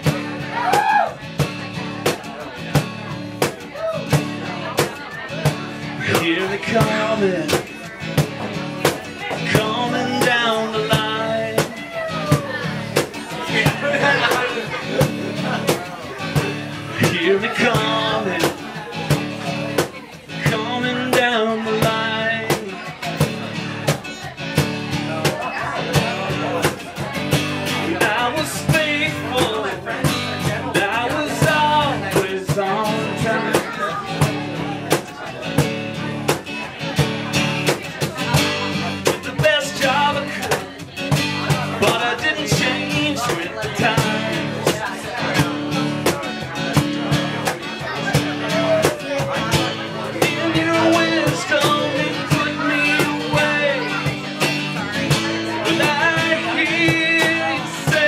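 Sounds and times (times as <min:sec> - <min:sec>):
acoustic guitar: 0:00.0 - 0:58.0
cajon beat: 0:00.0 - 0:58.0.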